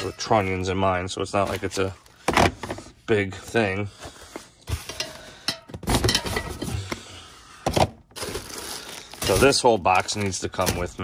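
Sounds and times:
cans clattering and scraping on plastic: 0.0s - 0.6s, 1.4s - 10.9s.

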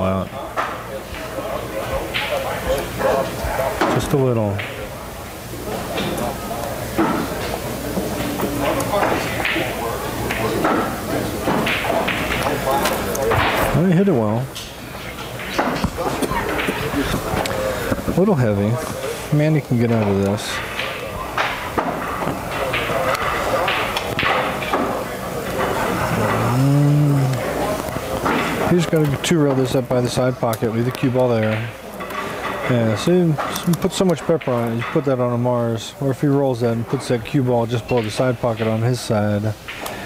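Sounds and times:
background voices: 5.6s - 29.4s
pool cue striking ball: 7.0s - 13.8s, 15.5s - 17.4s, 19.8s - 29.0s
billiard balls knocking together: 7.0s - 13.9s
man humming: 26.1s - 27.6s.

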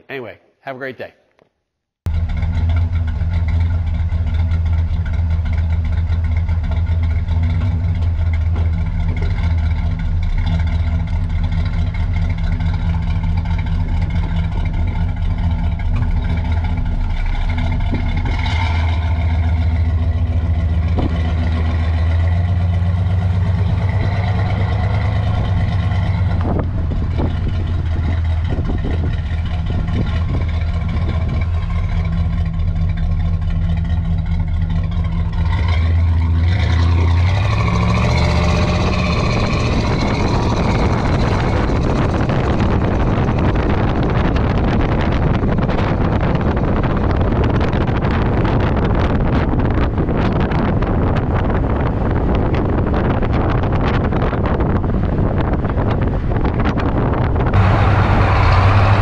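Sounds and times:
car exhaust burbling: 2.1s - 59.0s.

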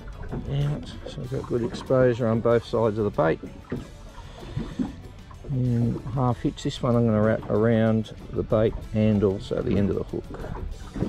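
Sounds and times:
man talking: 0.4s - 3.4s, 5.5s - 10.4s.

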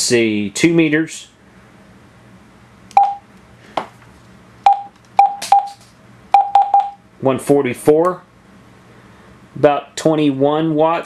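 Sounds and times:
short beeps: 2.9s - 3.2s, 4.7s - 5.8s, 6.4s - 7.0s.

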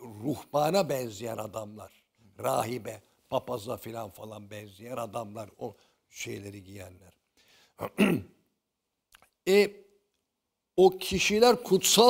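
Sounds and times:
man clearing his throat: 7.8s - 8.4s.

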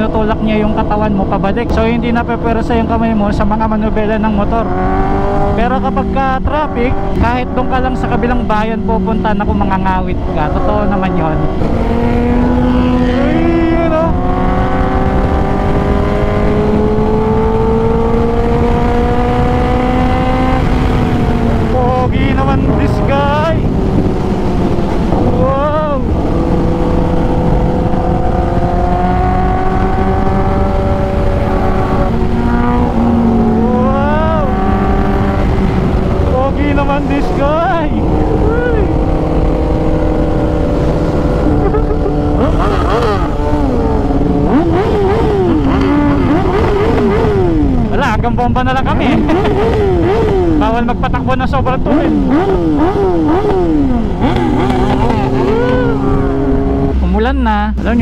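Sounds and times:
motorcycle engine cruising: 0.0s - 58.0s
second motorcycle riding alongside: 0.0s - 58.0s
wind noise: 0.0s - 58.0s.

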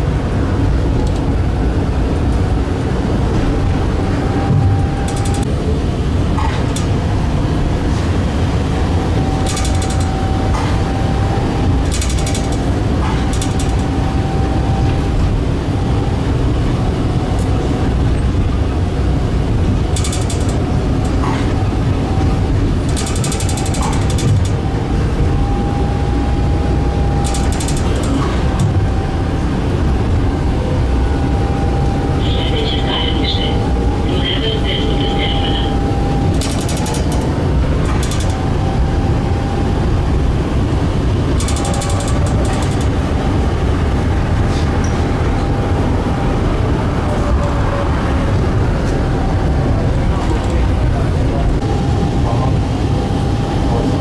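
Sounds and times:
faint steady whine: 0.0s - 54.0s
tram wheels rumbling on rails: 0.0s - 54.0s
rattling bursts: 2.3s - 52.1s.

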